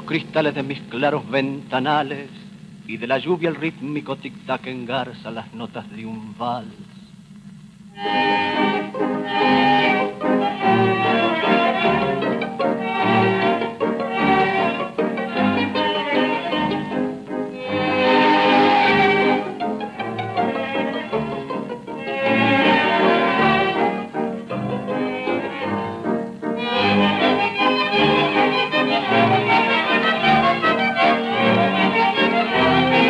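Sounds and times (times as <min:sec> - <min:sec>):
violins playing melody: 0:07.9 - 0:33.0.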